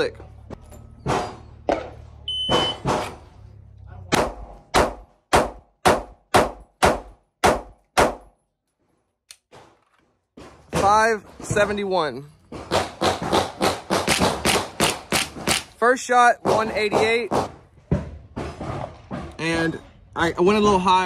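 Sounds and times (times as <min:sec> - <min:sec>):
shot timer beep: 0:02.3 - 0:02.8
pistol shots: 0:04.1 - 0:08.3.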